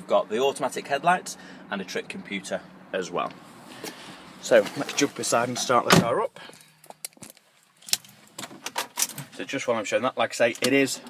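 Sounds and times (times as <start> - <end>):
car keys jangling and clicking: 6.6 - 9.3.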